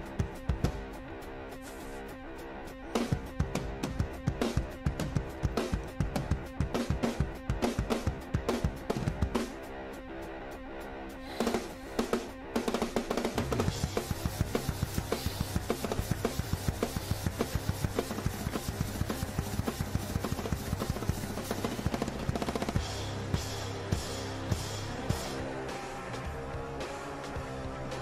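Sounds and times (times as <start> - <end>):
drum kit playing: 0.0 - 28.0
backing track bass line: 2.8 - 9.5, 11.4 - 28.0.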